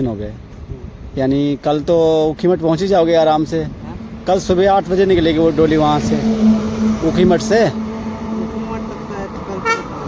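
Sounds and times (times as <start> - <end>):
car driving past: 3.4 - 10.0
car horn beep: 6.2 - 10.0.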